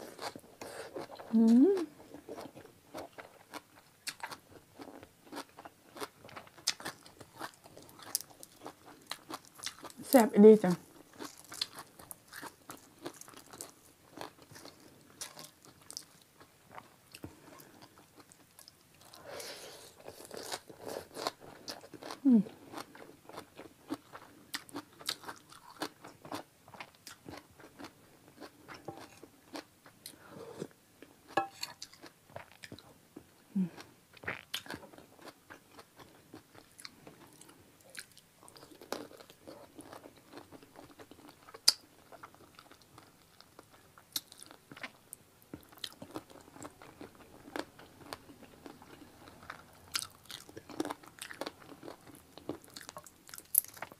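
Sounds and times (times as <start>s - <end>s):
close-miked chewing and biting: 0.0s - 10.0s, 20.0s - 30.2s, 34.2s - 53.9s.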